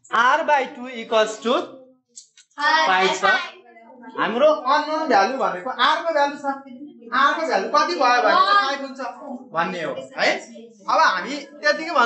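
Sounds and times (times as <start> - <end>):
person speaking: 0.0 - 1.8, 2.5 - 12.0.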